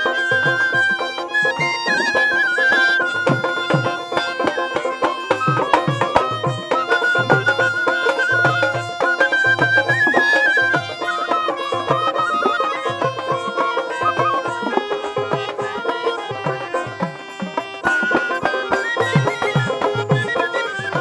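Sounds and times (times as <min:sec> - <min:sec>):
bamboo flute: 0:00.0 - 0:21.0
dotara: 0:00.0 - 0:21.0
harmonium: 0:00.0 - 0:21.0
plucked string instrument: 0:00.0 - 0:21.0
small hand cymbals: 0:00.0 - 0:21.0.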